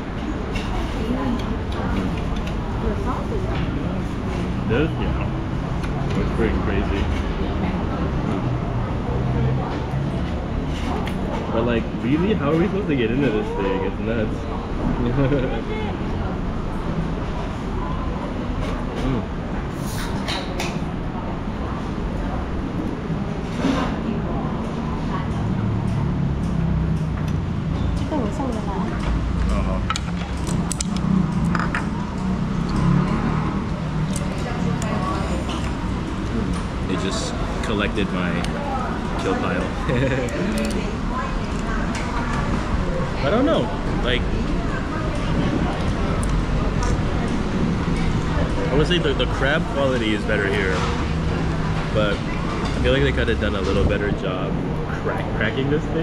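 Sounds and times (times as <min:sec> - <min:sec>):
diners chattering: 0:00.0 - 0:56.0.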